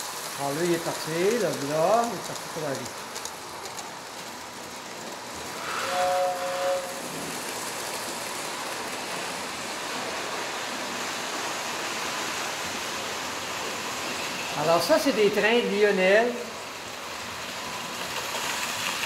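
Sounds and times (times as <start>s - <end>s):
model trains rolling on metal track: 0.0s - 19.0s
two-tone horn blast: 5.6s - 7.1s.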